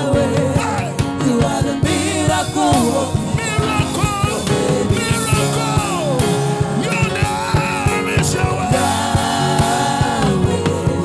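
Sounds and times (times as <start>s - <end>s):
instrumental backing with steady beat: 0.0s - 11.0s
man singing into a microphone: 0.0s - 11.0s.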